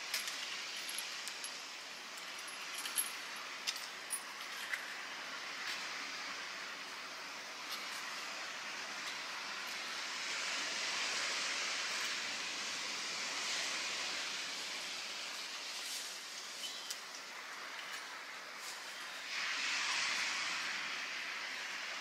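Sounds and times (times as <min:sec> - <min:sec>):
outdoor rush of noise: 0:00.0 - 0:22.0.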